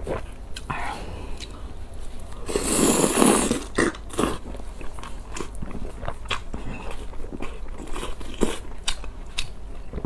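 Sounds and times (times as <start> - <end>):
noodles slurping: 2.4 - 7.1
wet chewing: 3.2 - 10.0.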